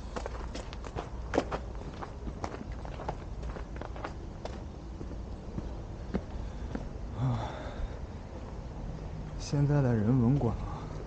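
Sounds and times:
footsteps walking: 0.0s - 7.0s
steady low rumble: 0.0s - 11.0s.

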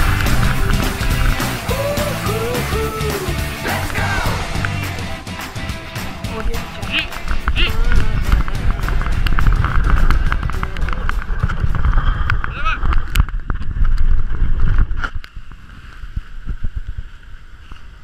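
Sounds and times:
wheels rolling over trail: 0.0s - 2.6s, 3.9s - 18.0s
wind rumble: 0.0s - 18.0s.

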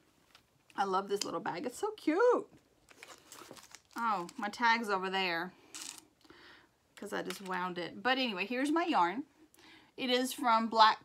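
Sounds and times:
cloth bag rustling and crinkling: 2.8s - 4.6s, 5.7s - 6.1s
hands rummaging in bag: 2.9s - 4.4s.

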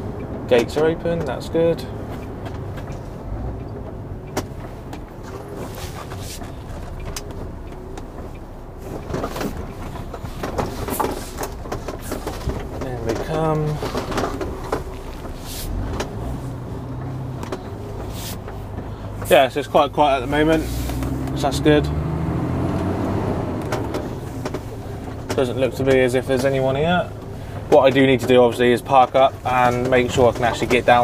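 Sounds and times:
diesel lorry engine running: 0.0s - 31.0s
clicks and knocks: 9.0s - 16.2s, 23.6s - 26.6s.

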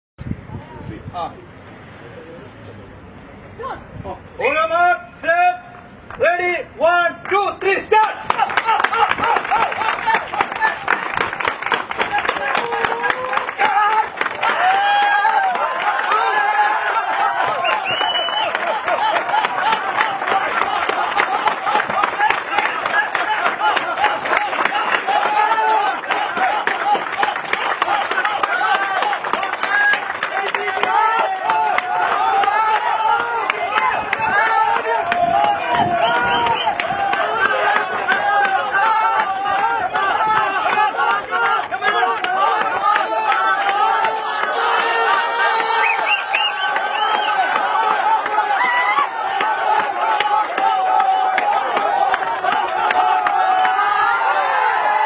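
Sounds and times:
crowd cheering and shouting: 6.3s - 55.0s
dense clapping: 7.2s - 54.0s.

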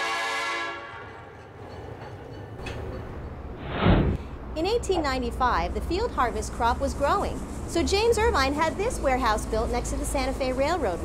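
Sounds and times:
train horn: 0.0s - 1.3s.

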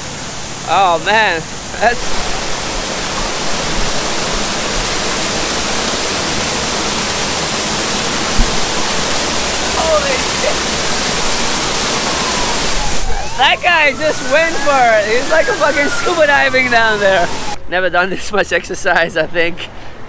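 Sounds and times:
waterfall pouring into a pool: 0.1s - 17.6s.

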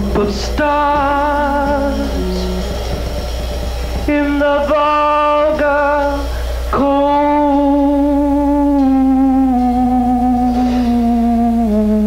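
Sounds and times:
steady low hum: 0.0s - 12.0s
sustained high note: 0.0s - 12.0s.

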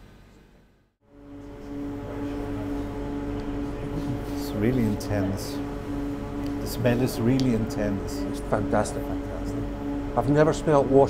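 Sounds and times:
steady hum with held tones: 0.0s - 11.0s.

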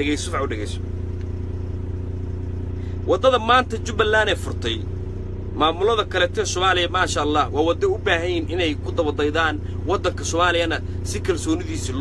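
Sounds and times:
man speaking: 0.0s - 0.8s, 3.0s - 4.9s, 5.6s - 12.0s
vehicle engine humming: 0.0s - 12.0s.

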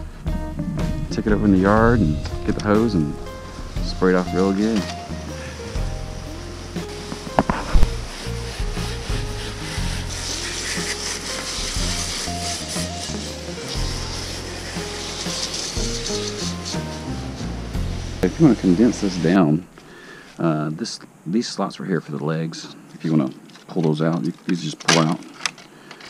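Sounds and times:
background music with bass line: 0.0s - 19.4s
hose spray hissing: 0.0s - 20.7s.

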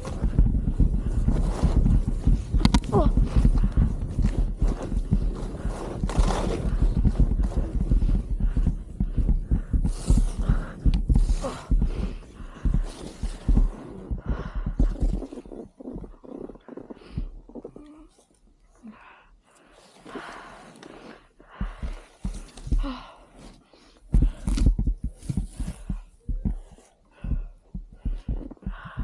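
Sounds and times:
skier breathing hard: 0.0s - 15.8s, 18.8s - 29.0s
low thumps on microphone: 0.0s - 16.1s, 24.1s - 29.0s
rustling on microphone: 0.0s - 17.8s, 20.0s - 29.0s.

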